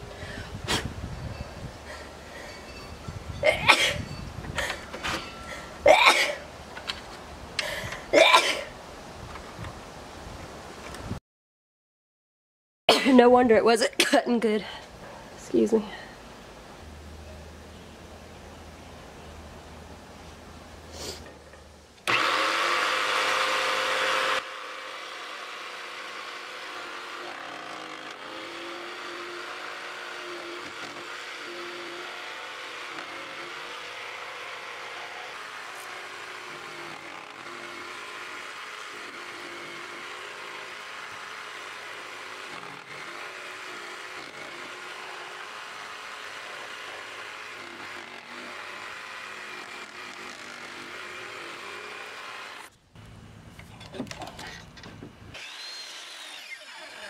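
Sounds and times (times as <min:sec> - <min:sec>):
jigsaw cutting wood: 0:22.0 - 0:52.7, 0:55.3 - 0:57.0.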